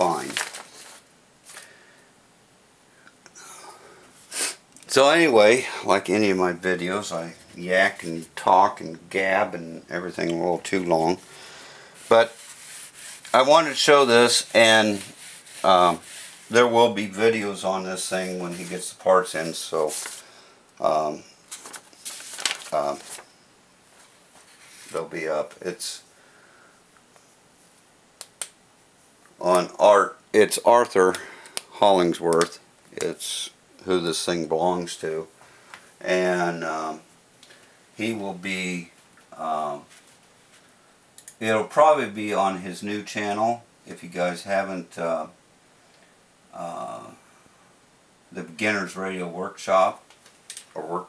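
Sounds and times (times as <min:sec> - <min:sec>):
faint breath: 0:01.5 - 0:02.2, 0:02.9 - 0:04.5, 0:11.2 - 0:12.1, 0:26.1 - 0:26.8
man sniffing: 0:03.4 - 0:04.6.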